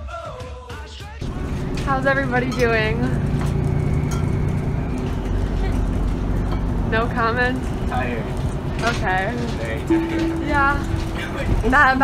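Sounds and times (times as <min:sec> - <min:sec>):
bus engine and road rumble: 0:01.2 - 0:12.0
low hum: 0:01.2 - 0:12.0.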